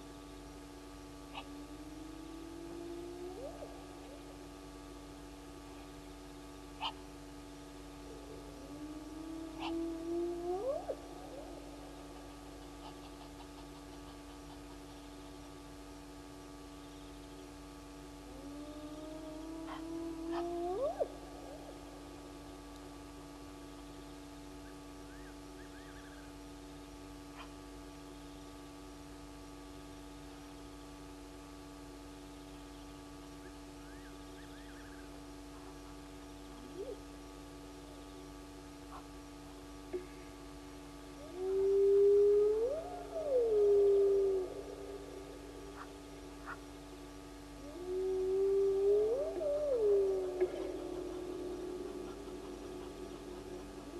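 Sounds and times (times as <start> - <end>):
long low animal call: 1.2 - 16.6, 17.2 - 26.4, 33.3 - 39.2, 39.9 - 53.9.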